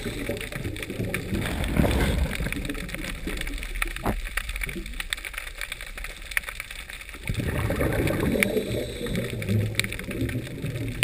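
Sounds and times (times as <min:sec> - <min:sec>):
faint clicks: 0:00.0 - 0:07.2
underwater gurgling rumble: 0:00.0 - 0:11.0.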